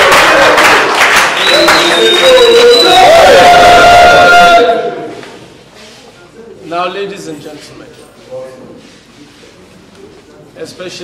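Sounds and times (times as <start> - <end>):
crowd cheering and clapping: 0.0 - 5.4.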